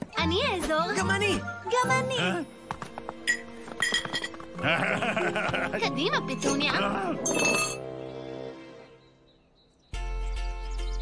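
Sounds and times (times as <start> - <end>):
cartoon background music: 0.0 - 9.2
cutlery clinking on a dish: 7.3 - 7.8.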